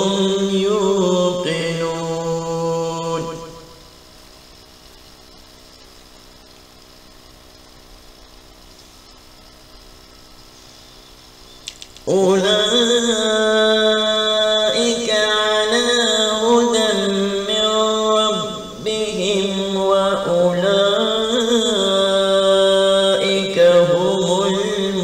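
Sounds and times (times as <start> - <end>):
man chanting melodically: 0.0 - 3.9, 12.1 - 25.0
faint steady hum: 0.0 - 25.0.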